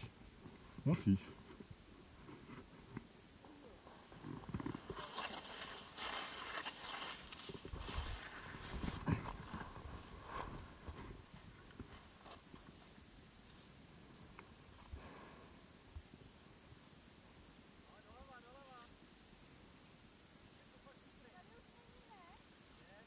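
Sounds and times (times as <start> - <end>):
skis scraping over snow: 4.0 - 12.9.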